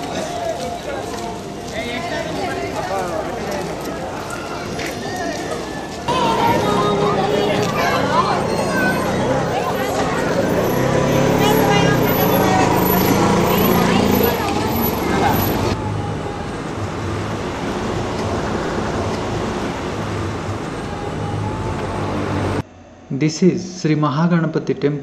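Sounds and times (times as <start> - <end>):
people talking: 0.0 - 16.4, 23.1 - 25.0
vehicles passing: 0.0 - 23.1
steady outdoor noise: 0.0 - 25.0.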